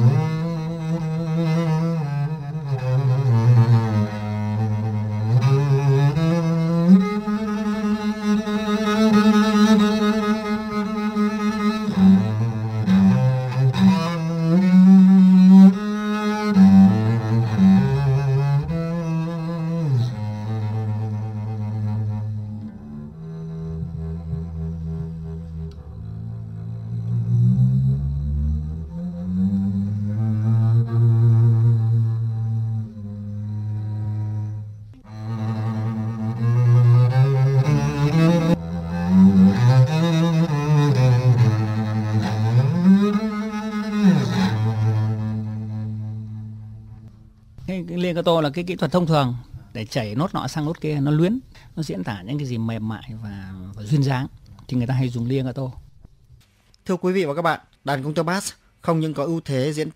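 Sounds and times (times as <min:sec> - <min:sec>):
bowed double bass: 0:00.0 - 0:56.4.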